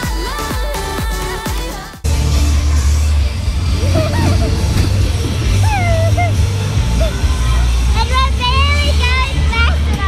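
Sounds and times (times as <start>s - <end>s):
girl squealing: 5.5s - 7.1s.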